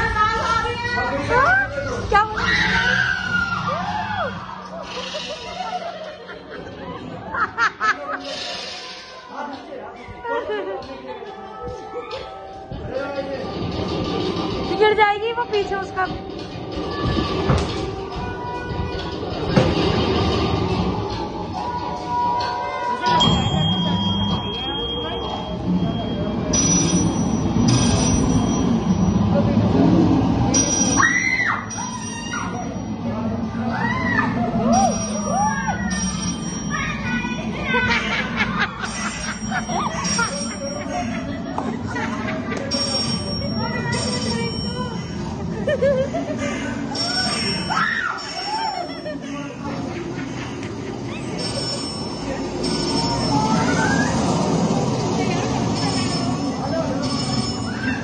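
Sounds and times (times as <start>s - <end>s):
arcade machine noise: 0.0s - 58.0s
music: 10.0s - 25.5s
voices: 14.6s - 58.0s.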